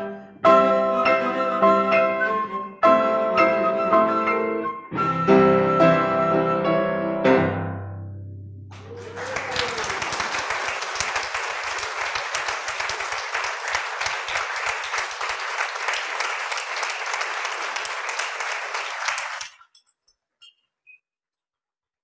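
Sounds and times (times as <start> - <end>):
audience applauding: 8.7 - 19.6.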